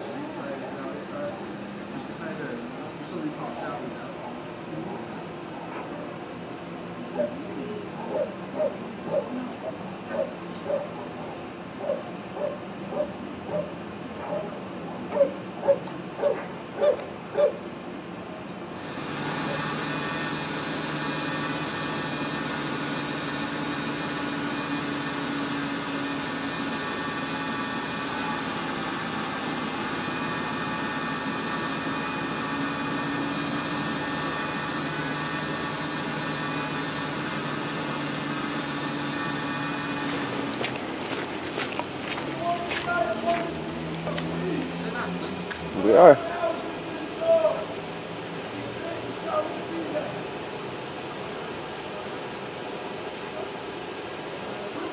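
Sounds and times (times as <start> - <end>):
steady engine-like hum: 0.0 - 54.9
dog barking: 7.2 - 7.4, 8.0 - 10.9, 11.8 - 17.6.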